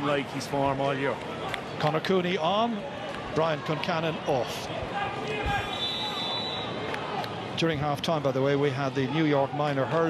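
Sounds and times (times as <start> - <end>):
stadium crowd murmuring: 0.0 - 10.0.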